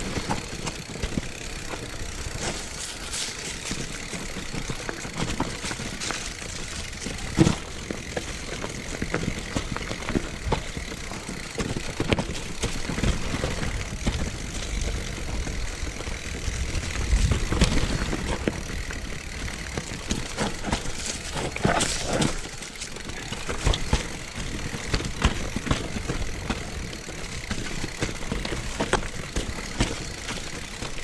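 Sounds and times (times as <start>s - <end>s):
bike clattering knocks: 0.0s - 16.1s, 16.7s - 31.0s
bike tyres on rough trail: 0.0s - 31.0s
heavy rumble: 12.2s - 22.5s.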